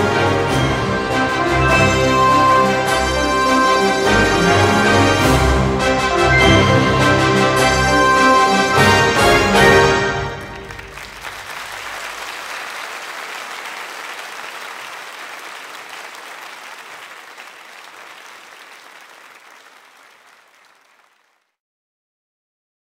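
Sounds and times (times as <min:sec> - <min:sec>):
band playing final notes: 0:00.0 - 0:12.3
audience applauding: 0:08.3 - 0:21.5.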